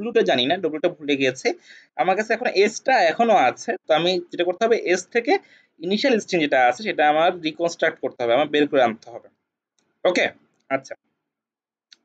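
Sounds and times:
man speaking: 0.0 - 9.3, 10.1 - 11.0.

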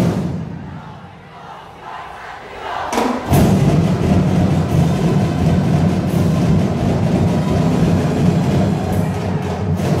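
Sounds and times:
drum ensemble rolling rumble: 2.9 - 10.0.

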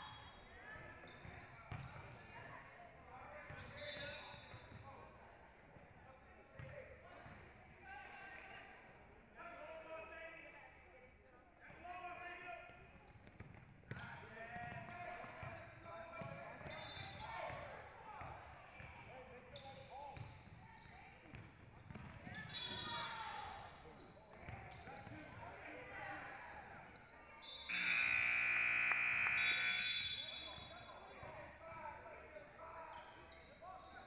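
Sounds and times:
basketball dribbling: 27.7 - 30.0
scoreboard buzzer: 27.7 - 30.5
voices calling out: 27.7 - 30.5.

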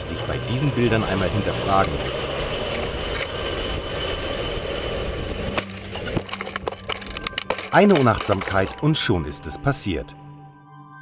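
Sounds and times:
bicycle rolling on asphalt: 0.0 - 9.6.

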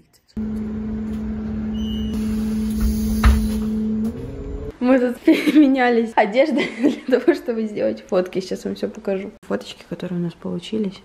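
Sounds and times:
bus interior hum: 0.4 - 4.8.

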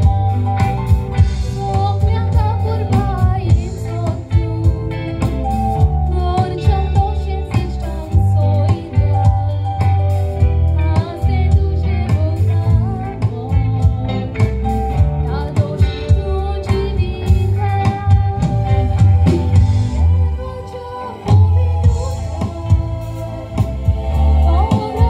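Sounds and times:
music with strong bass: 0.0 - 25.0
woman singing into a microphone: 1.3 - 25.0.

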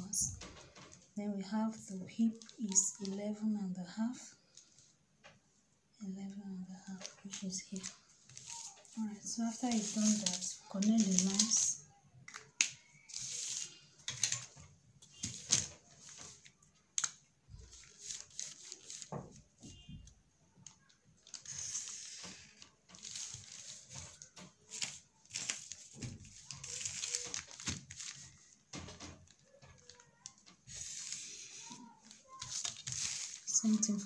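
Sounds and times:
paper rustling and crinkling: 0.1 - 3.4, 6.8 - 34.0.

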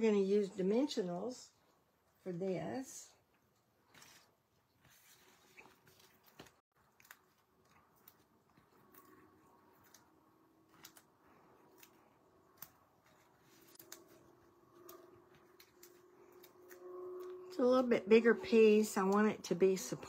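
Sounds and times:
paper rustling and ticks: 3.8 - 10.1, 10.7 - 17.3.

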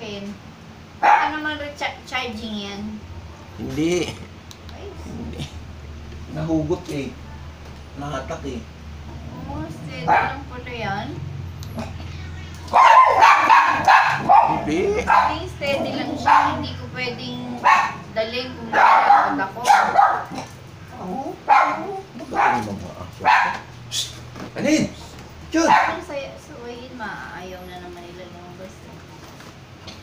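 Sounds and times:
voices: 0.0 - 30.0
dog barking: 1.0 - 1.4, 10.0 - 10.5, 12.6 - 16.9, 17.5 - 20.6, 21.4 - 23.7, 25.6 - 26.1.

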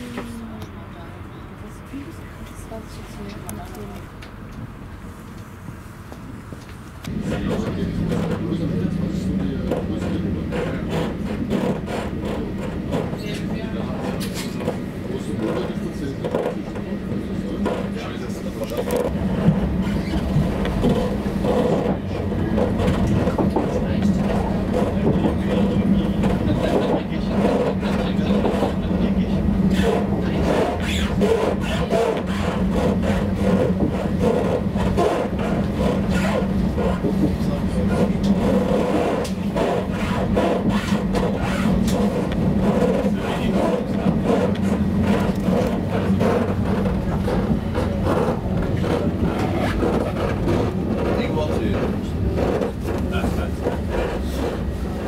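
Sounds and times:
train rail rumble inside carriage: 0.0 - 55.0.

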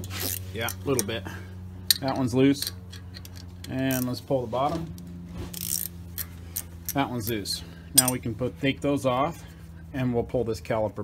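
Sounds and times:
steady low hum: 0.0 - 11.0
ratcheting wrench clicking: 1.9 - 4.2, 5.5 - 7.4.

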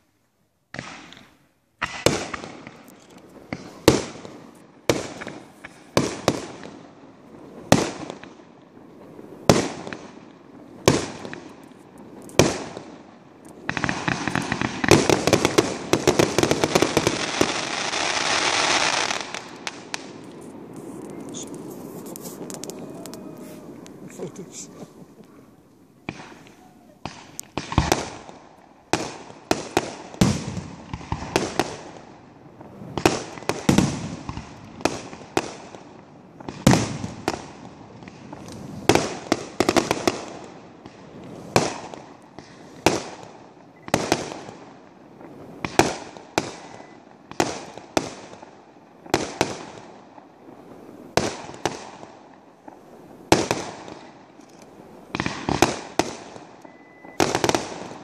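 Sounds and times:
fireworks bursting: 0.7 - 58.0.

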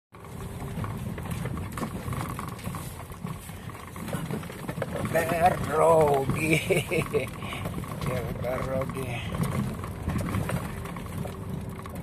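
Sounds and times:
car engine and road rumble: 0.1 - 12.0
car knocking and rattling: 0.2 - 12.0.

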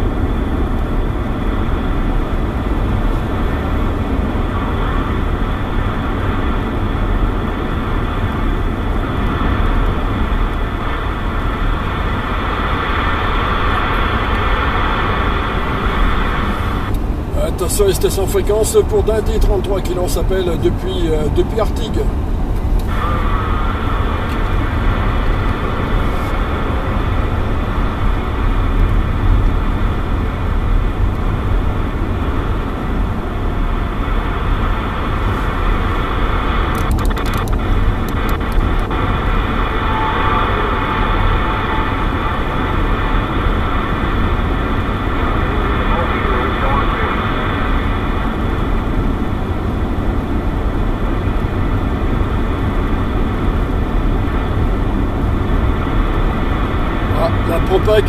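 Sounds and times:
car engine and road rumble: 0.0 - 58.0
radio hiss and static: 0.3 - 58.0
faint distant radio voice: 22.9 - 24.2, 38.4 - 44.0, 45.2 - 47.6
radio channel clicks: 36.6 - 39.0.

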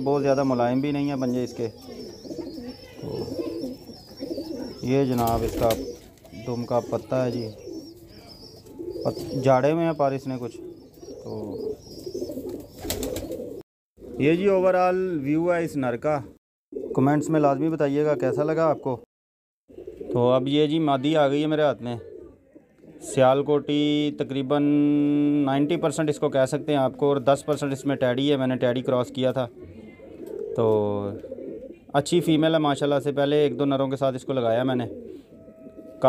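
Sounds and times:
pigeons cooing: 0.0 - 14.4, 16.8 - 19.1, 19.7 - 20.6, 21.7 - 23.2, 28.8 - 31.9, 33.1 - 36.0.

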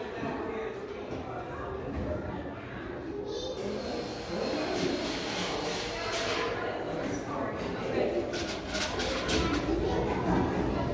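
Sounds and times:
echoing room noise: 0.0 - 10.9
faint distant voices: 0.0 - 10.9.

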